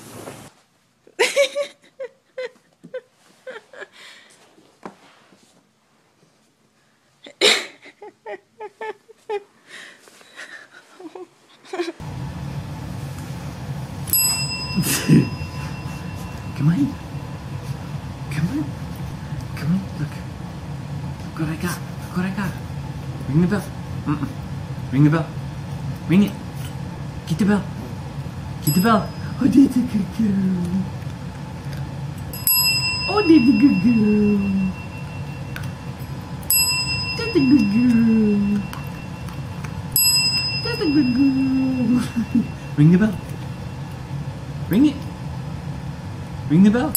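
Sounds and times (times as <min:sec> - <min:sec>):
desk service bell ringing: 0:14.0 - 0:17.7, 0:28.6 - 0:29.8, 0:32.3 - 0:44.0.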